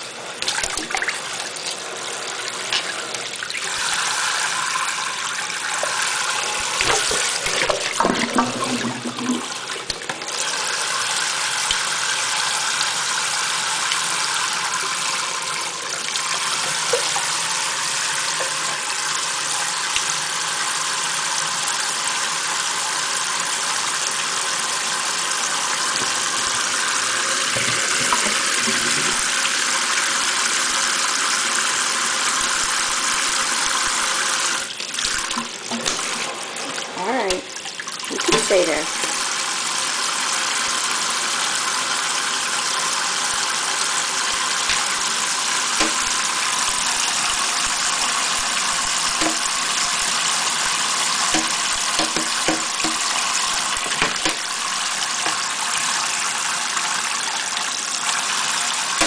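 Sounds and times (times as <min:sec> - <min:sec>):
faucet running into steel sink: 0:00.0 - 0:59.0.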